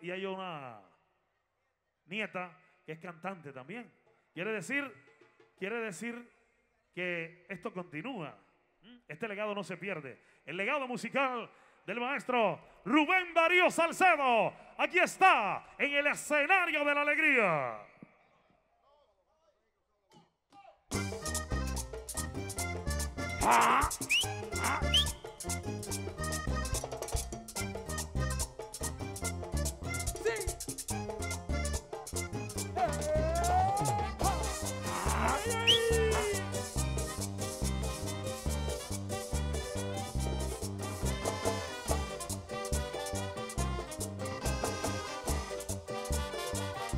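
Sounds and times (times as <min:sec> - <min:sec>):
horn lines: 0:20.9 - 0:26.8, 0:30.3 - 0:46.9
bass beat: 0:20.9 - 0:26.9, 0:27.6 - 0:46.4
live tropical dance band: 0:20.9 - 0:46.9.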